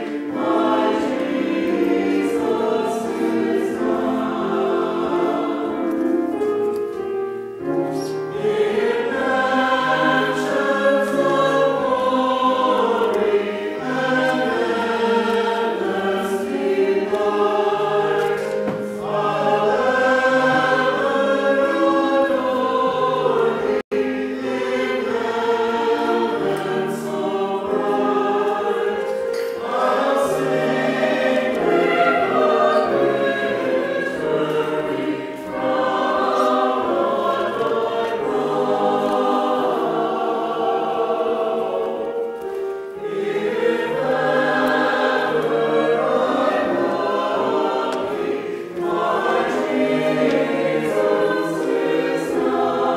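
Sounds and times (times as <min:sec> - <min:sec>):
choir singing: 0:00.0 - 0:52.9
piano accompaniment: 0:00.0 - 0:52.9.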